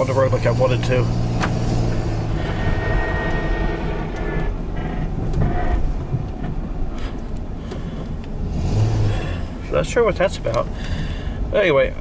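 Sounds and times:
faint whine: 0.0s - 8.3s
engine and road rumble: 0.0s - 12.0s.

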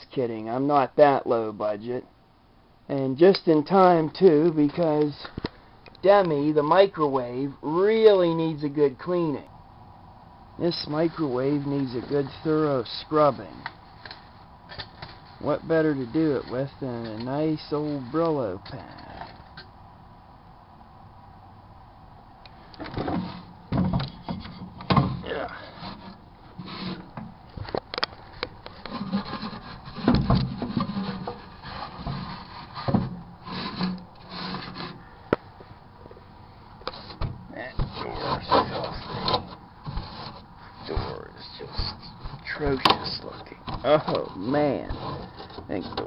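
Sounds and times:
steel wool scrubbing metal: 28.7s - 35.0s, 37.0s - 46.0s.

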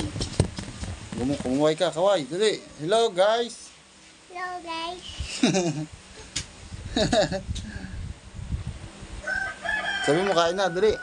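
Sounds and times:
rooster crowing: 9.2s - 11.0s.

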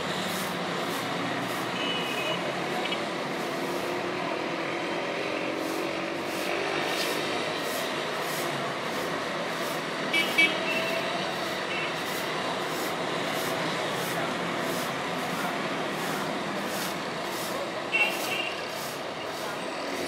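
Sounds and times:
street traffic din: 0.0s - 20.0s
vehicle horn beeps: 1.8s - 3.0s, 10.1s - 11.1s, 11.7s - 12.0s, 17.9s - 18.7s.

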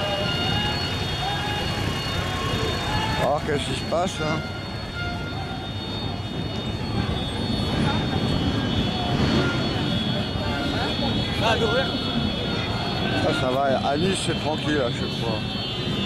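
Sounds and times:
crowd noise: 0.0s - 16.0s
passers-by voices: 0.0s - 16.0s
traffic rumble: 0.0s - 16.0s.

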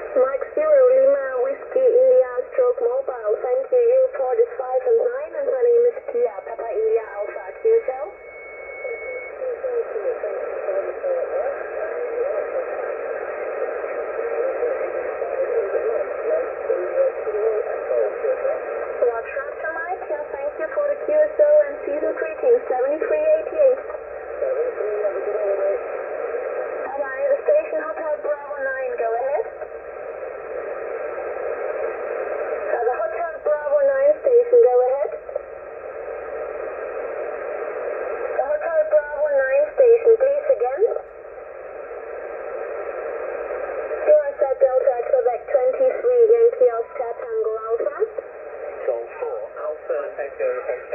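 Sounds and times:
overlapping voices over radio: 0.0s - 8.1s, 8.8s - 50.9s
thin steady whistle: 7.1s - 9.5s.

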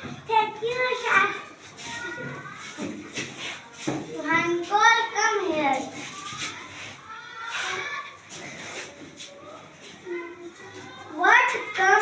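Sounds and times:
faint children's voices: 0.0s - 12.0s
shoes shuffling on floor: 5.7s - 10.2s.

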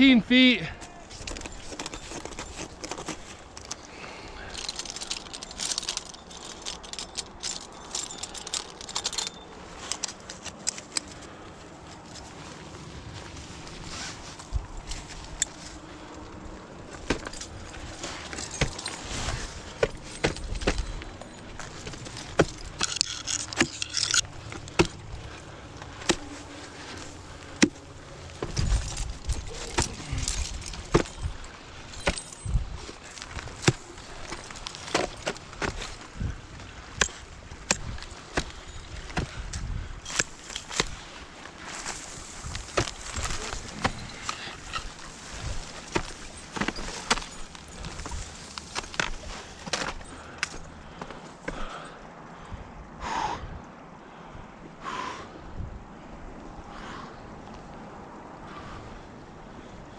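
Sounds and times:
metal climbing gear clinking: 0.7s - 52.6s
ice axes striking ice: 16.9s - 21.0s, 21.6s - 25.1s, 26.0s - 27.8s, 28.4s - 36.2s, 37.0s - 39.4s, 40.1s - 51.8s.

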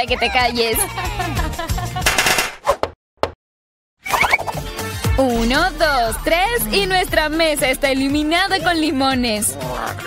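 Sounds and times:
background music: 0.0s - 2.0s, 4.2s - 10.0s.

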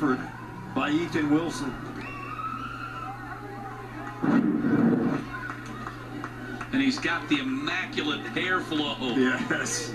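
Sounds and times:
steady low hum: 0.0s - 9.9s.

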